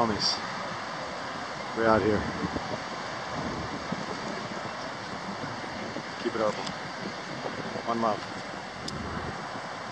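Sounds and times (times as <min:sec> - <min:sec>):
road traffic: 0:00.0 - 0:09.9
wind buffeting microphone: 0:00.0 - 0:09.9.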